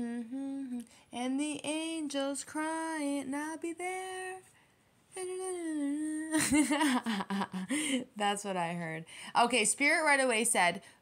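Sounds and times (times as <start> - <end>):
woman humming: 0.0 - 0.9
woman laughing: 6.3 - 8.1.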